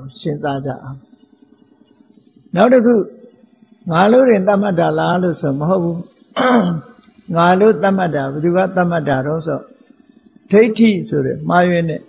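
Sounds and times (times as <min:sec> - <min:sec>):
man speaking: 0:00.0 - 0:01.0, 0:02.5 - 0:03.2, 0:03.9 - 0:09.7, 0:10.5 - 0:12.0
man clearing throat: 0:06.4 - 0:07.0.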